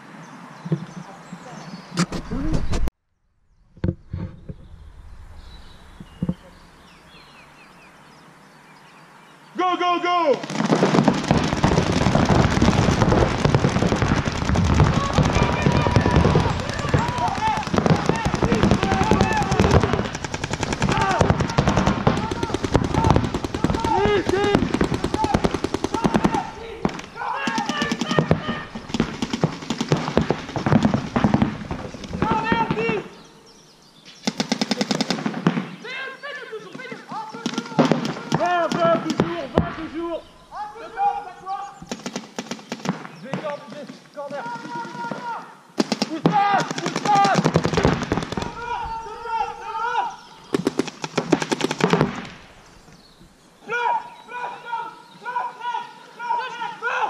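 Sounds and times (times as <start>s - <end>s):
paintball markers firing: 10.4s - 33.3s, 41.8s - 43.8s, 50.5s - 52.4s
players shouting: 12.9s - 29.6s, 30.5s - 33.2s, 35.8s - 41.8s, 44.3s - 50.8s, 53.6s - 57.0s.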